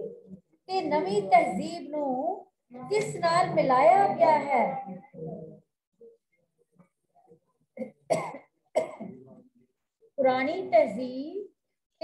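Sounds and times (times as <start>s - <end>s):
person coughing: 7.8s - 9.2s.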